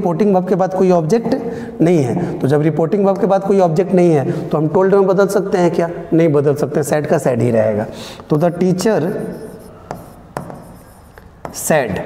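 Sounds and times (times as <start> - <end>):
man speaking: 0.0 - 9.6, 11.5 - 12.0
chalk tapping on blackboard: 8.2 - 12.0
chalk scratching: 8.3 - 11.8.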